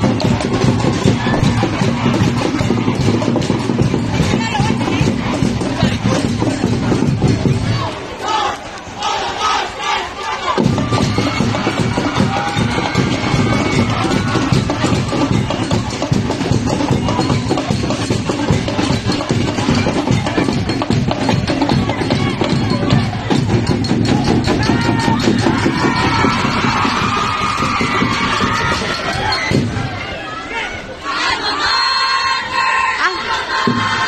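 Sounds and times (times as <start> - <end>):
quick steady drumming: 0.0 - 7.9, 10.6 - 29.9
music: 0.0 - 8.4, 10.4 - 30.2, 31.1 - 34.0
crowd shouting and cheering: 0.0 - 34.0.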